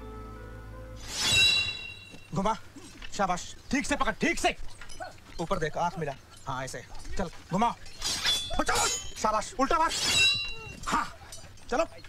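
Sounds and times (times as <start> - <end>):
sword blades clashing: 1.0 - 2.5, 6.4 - 12.0.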